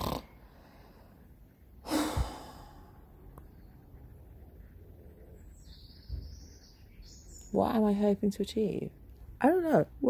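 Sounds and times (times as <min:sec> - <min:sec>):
woman sighing: 0:01.8 - 0:03.0.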